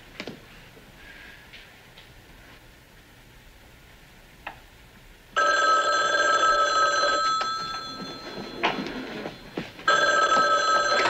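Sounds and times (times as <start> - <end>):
telephone bell ringing: 5.4 - 11.0.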